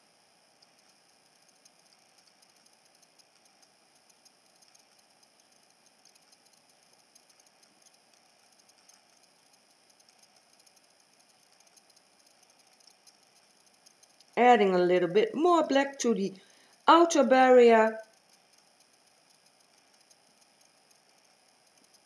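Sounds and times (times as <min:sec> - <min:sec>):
light scattered ticks: 0:00.1 - 0:22.0.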